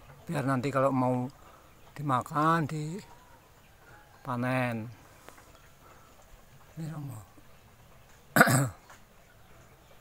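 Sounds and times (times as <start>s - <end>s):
man coughing: 8.4s - 8.8s.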